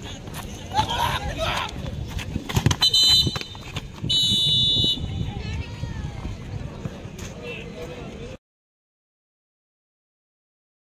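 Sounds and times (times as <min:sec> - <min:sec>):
referee's whistle blasts: 0:02.8 - 0:05.1.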